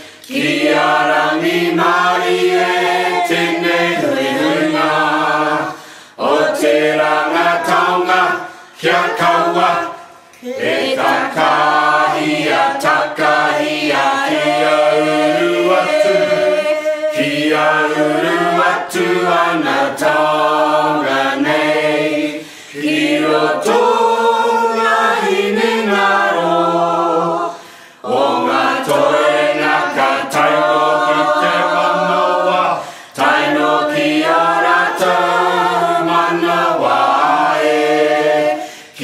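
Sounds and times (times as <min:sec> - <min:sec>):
voices chanting together: 0:00.0 - 0:39.0.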